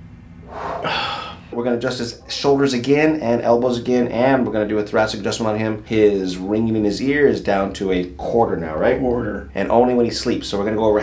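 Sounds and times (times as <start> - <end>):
man's breathy whoo: 0.5 - 1.5.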